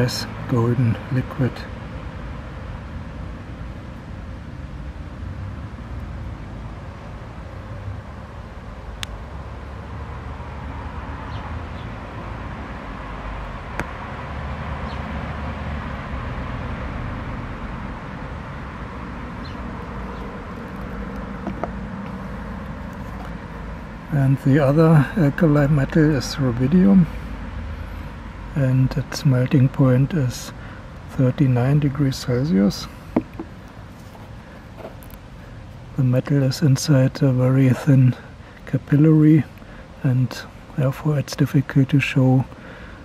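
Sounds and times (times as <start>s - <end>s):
outdoor low rumble: 1.0s - 36.1s.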